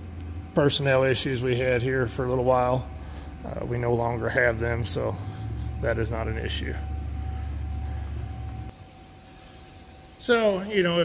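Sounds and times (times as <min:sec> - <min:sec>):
low rumble: 0:00.0 - 0:08.8
faint thin hum: 0:02.0 - 0:10.2.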